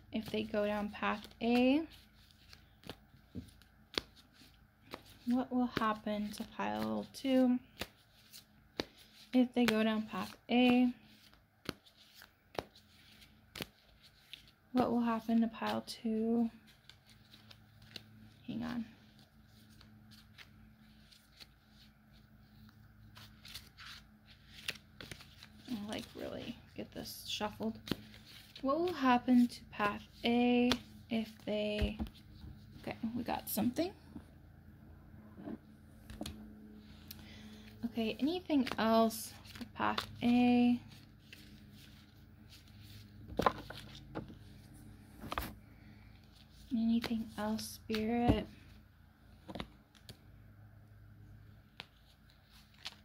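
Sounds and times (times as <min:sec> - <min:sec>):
cards rustling and shuffling: 0:00.0 - 0:34.3, 0:35.9 - 0:48.8, 0:49.4 - 0:50.4, 0:51.4 - 0:53.0
faint steady hum: 0:00.0 - 0:53.0
steady low hum: 0:24.0 - 0:49.4.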